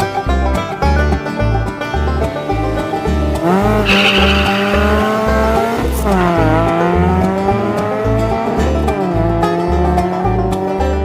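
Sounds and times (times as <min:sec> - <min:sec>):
race car engine accelerating: 0:01.5 - 0:11.0
music with steady beat: 0:03.4 - 0:08.1.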